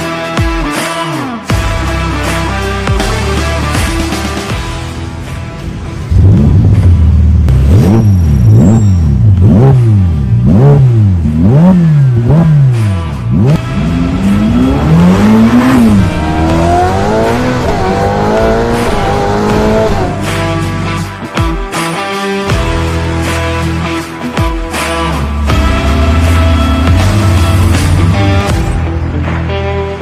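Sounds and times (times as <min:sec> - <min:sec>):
background music: 0:00.0 - 0:30.0
sports car engine revving: 0:06.0 - 0:20.7, 0:25.2 - 0:28.7.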